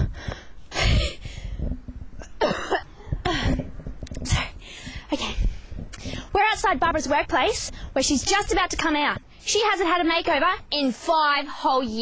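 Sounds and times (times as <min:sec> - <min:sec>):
person coughing breathily: 0:02.2 - 0:03.6.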